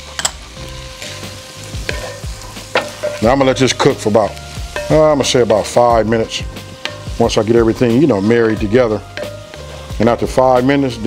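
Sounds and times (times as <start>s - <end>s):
food sizzling in a skillet: 0.0s - 11.0s.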